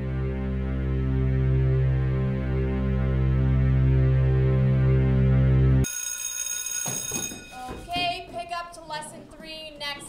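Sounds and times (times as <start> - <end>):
low droning electronic music: 0.0 - 5.9
high ringing bell tone: 5.8 - 8.3.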